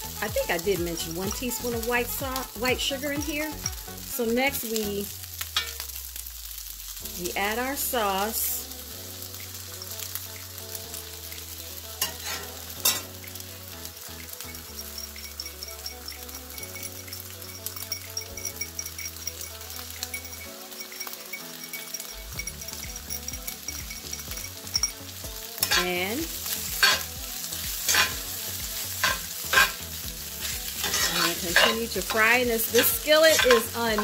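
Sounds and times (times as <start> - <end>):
rice sizzling in skillet: 0.0 - 34.0
metal spatula scraping pan: 12.0 - 13.5, 25.6 - 34.0.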